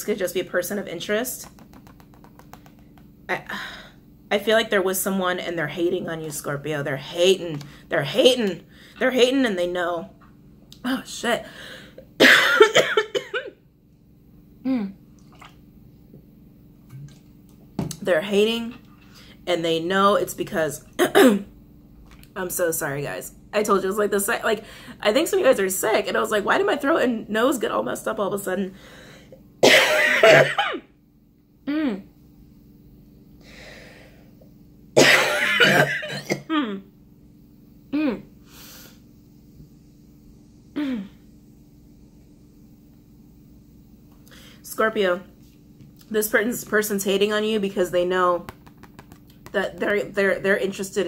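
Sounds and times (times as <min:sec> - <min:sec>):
woman coughing: 0:12.2 - 0:13.5, 0:21.0 - 0:21.5, 0:29.6 - 0:30.8, 0:35.0 - 0:36.8.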